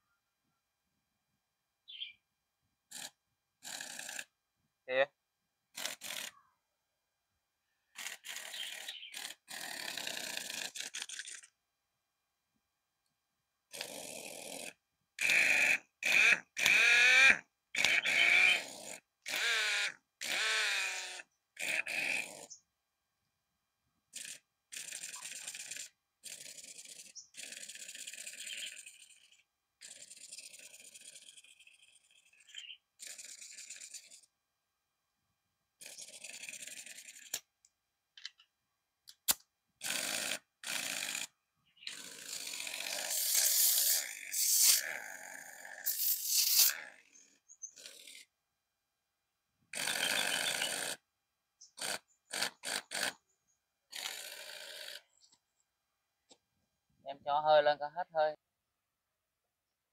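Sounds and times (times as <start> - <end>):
pneumatic impact wrench bursts: 5.8 - 6.4, 8.0 - 11.4, 13.7 - 22.6, 39.8 - 45.0, 45.8 - 47.0, 49.8 - 51.0, 51.8 - 53.2, 53.9 - 55.0.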